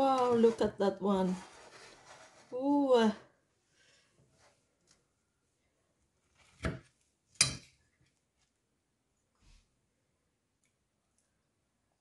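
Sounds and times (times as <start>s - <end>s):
metal spoon cutting pavlova: 6.5s - 7.8s.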